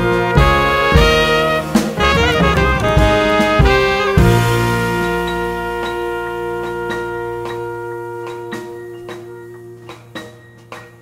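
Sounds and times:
horns playing held notes: 0.0 - 11.0
jazz band playing: 0.0 - 11.0
sharp drum hits: 0.0 - 11.0.

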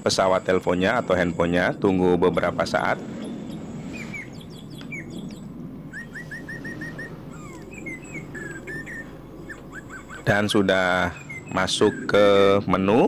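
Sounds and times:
small birds chirping: 0.0 - 13.0
steady low background noise: 0.0 - 13.0.

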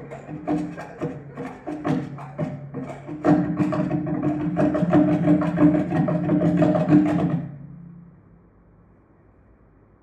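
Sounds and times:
fast drum roll on hollow container: 0.0 - 7.7.

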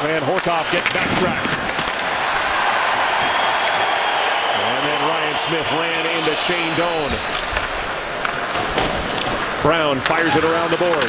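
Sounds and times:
hockey sticks and skates on ice: 0.0 - 11.0.

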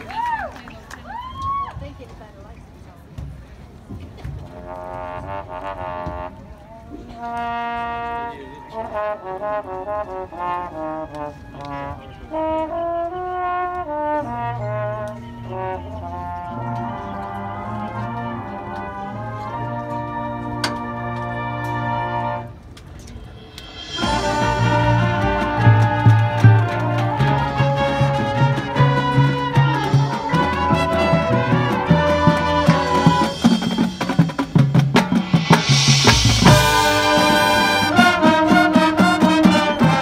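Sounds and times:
marching band brass chords: 4.3 - 40.0
sharp hit: 23.2 - 25.3, 33.2 - 37.9.

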